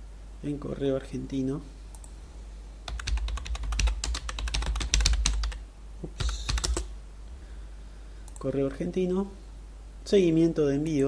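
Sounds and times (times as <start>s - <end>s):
fast typing on keyboard: 2.9s - 5.6s, 6.2s - 6.9s.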